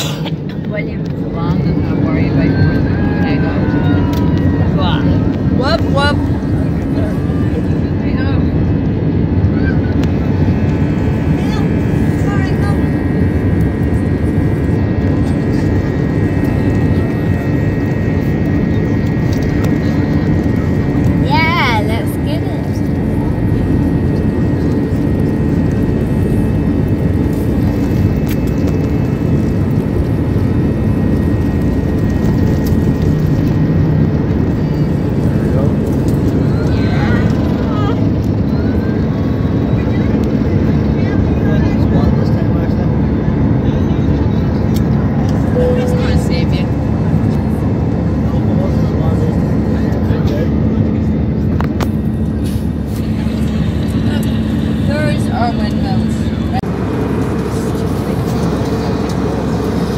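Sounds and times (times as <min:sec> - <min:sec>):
jet engines rushing: 0:00.0 - 0:59.9.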